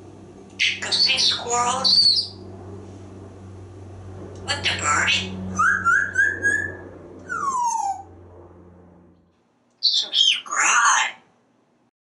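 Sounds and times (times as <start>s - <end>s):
parrot whistling: 0.6s - 2.4s, 4.7s - 8.1s
rough voice-like parrot burst: 9.8s - 11.3s.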